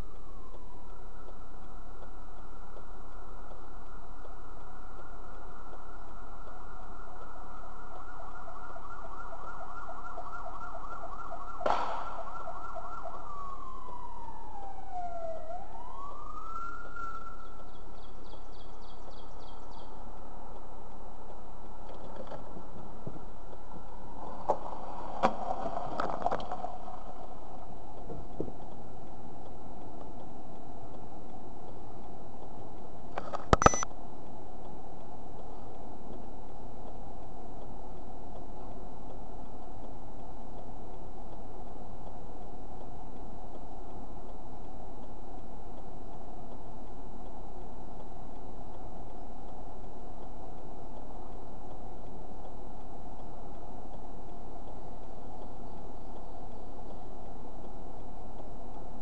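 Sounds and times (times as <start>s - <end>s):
siren wailing: 3.6s - 17.8s.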